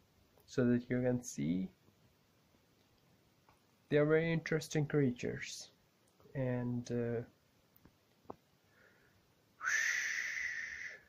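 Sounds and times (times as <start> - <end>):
man making breathy whistle-like ooh: 9.6 - 11.0.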